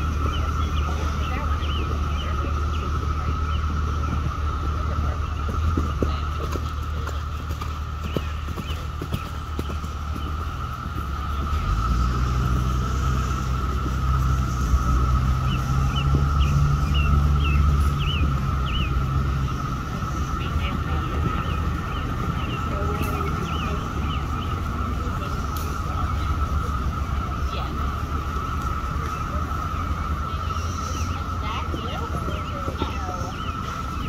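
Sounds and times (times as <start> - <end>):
bird chirps: 0.0 - 34.0
engine hum: 0.0 - 34.0.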